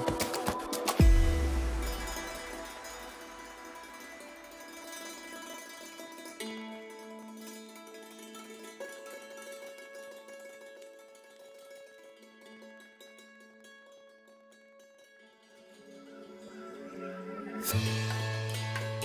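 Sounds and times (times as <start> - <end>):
hammered dulcimer: 0.0 - 17.0, 17.6 - 19.0.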